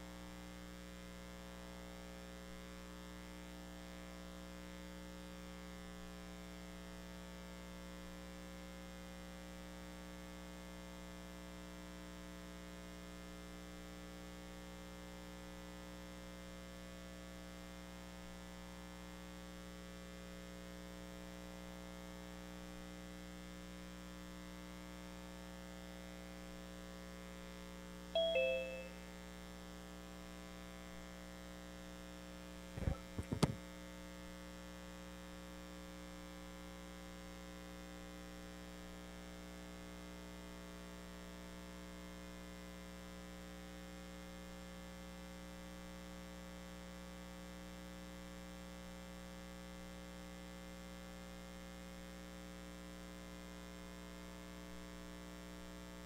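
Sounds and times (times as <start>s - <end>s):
two-note falling chime: 28.2s - 29.0s
electrical mains hum: 32.8s - 33.6s
microphone being bumped: 32.8s - 33.6s.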